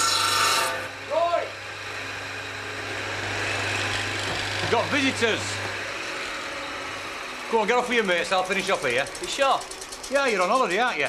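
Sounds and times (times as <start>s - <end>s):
circular saw humming: 0.0s - 11.0s.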